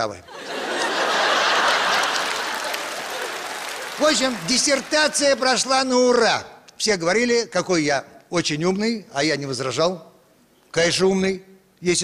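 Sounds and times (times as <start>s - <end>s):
audience applauding: 0.5s - 6.0s.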